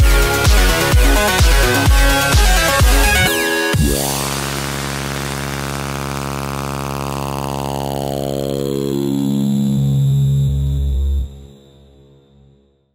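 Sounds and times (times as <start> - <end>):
held synthesizer chord: 0.0 - 12.5
falling synth sweep: 0.7 - 12.0.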